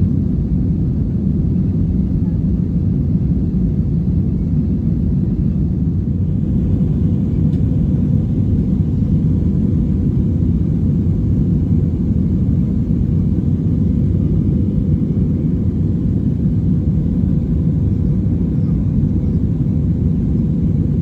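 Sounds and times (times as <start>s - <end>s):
jet engines rumbling in cabin: 0.0s - 21.0s.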